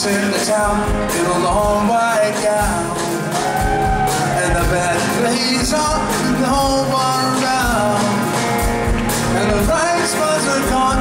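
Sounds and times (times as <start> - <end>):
electric guitar: 0.0 - 11.0.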